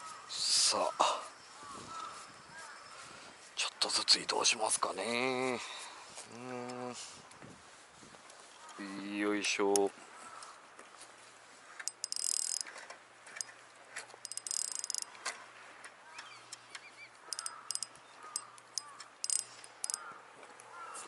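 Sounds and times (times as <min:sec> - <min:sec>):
fishing reel clicks: 0:11.8 - 0:12.8, 0:14.2 - 0:15.2, 0:17.3 - 0:20.1
reel rasping bursts: 0:11.8 - 0:12.8, 0:14.2 - 0:15.2, 0:17.3 - 0:20.1.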